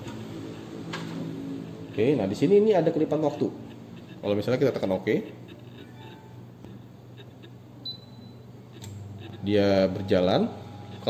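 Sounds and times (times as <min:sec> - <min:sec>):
steady low hum: 0:00.0 - 0:11.0
microwave short high beep: 0:07.8 - 0:08.5.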